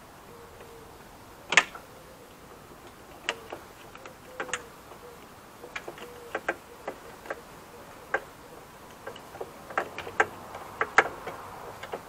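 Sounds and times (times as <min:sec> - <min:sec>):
sharp plastic clicks: 0:01.5 - 0:12.0.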